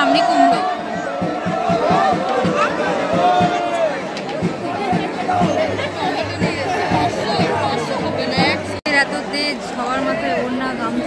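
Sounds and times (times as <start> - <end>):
crowd shouting and chanting: 0.0 - 11.0
music with low thuds: 1.0 - 8.8.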